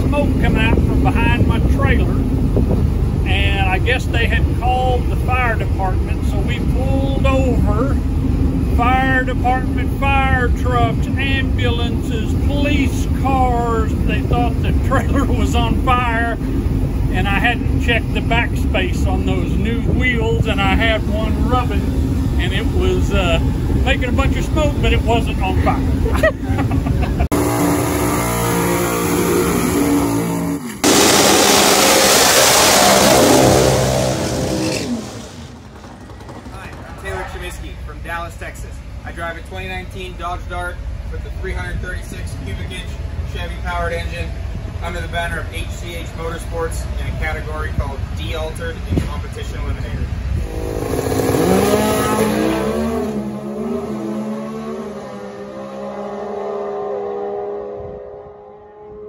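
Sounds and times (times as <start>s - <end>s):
drag race cars accelerating: 0.0s - 38.1s, 49.7s - 59.0s
race car engine revving: 27.2s - 38.2s, 50.3s - 59.0s.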